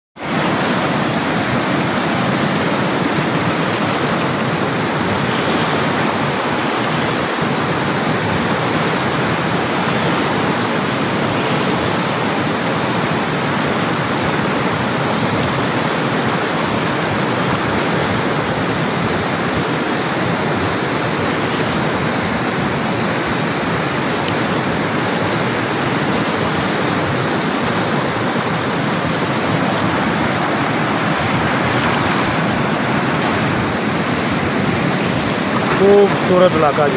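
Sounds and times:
whitewater rapids rushing: 0:00.2 - 0:36.9.

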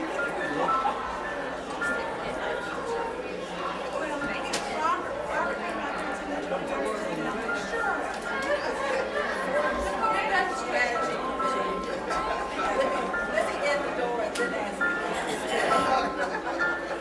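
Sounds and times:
crowd chatting in reverberant hall: 0:00.0 - 0:17.0
faint music with held notes: 0:00.0 - 0:17.0.

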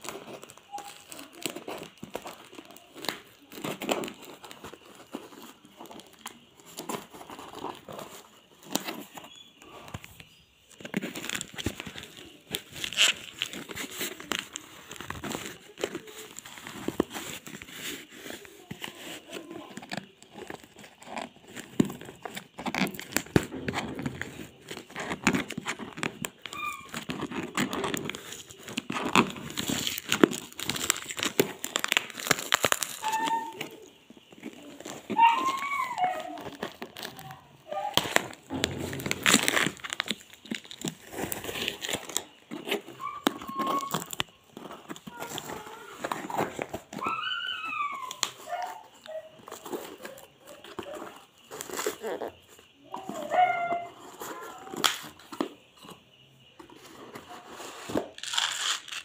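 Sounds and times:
cardboard parcel being opened: 0:00.0 - 0:59.0
plastic wrapping crinkling: 0:00.0 - 0:59.0.

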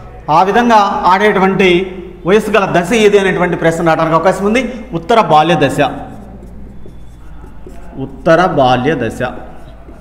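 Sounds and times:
marker scratching on whiteboard: 0:03.8 - 0:10.0.

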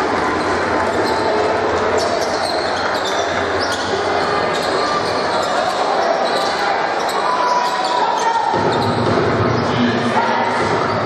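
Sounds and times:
crowd chatter echoing: 0:00.0 - 0:11.0
shoes squeaking: 0:00.4 - 0:09.0.

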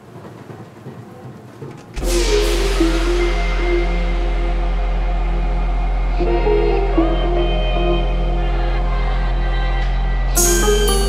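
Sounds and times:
loud music beat: 0:02.0 - 0:07.7, 0:10.4 - 0:11.0.

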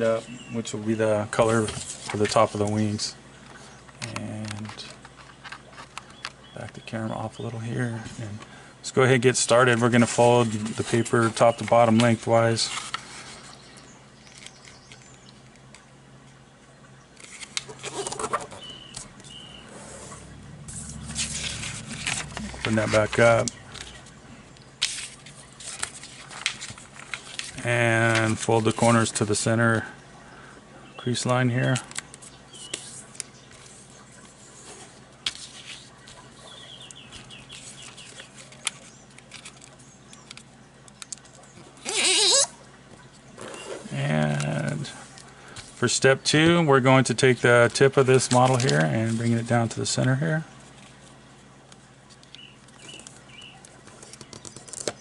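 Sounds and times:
paper rustling and creasing: 0:01.3 - 0:06.3, 0:09.1 - 0:13.7, 0:17.2 - 0:29.8, 0:31.1 - 0:40.5, 0:41.1 - 0:51.2, 0:52.0 - 0:55.0
short high squeaks: 0:41.8 - 0:42.6.

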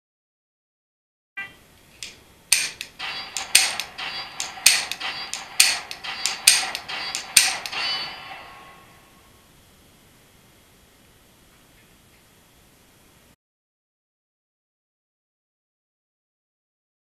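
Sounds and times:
sharp metallic clicks with ringing: 0:02.0 - 0:08.0.

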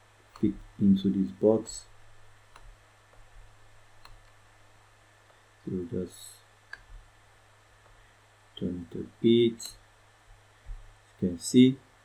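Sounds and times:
faint room hum: 0:00.0 - 0:12.0
computer mouse click: 0:04.0 - 0:04.4.

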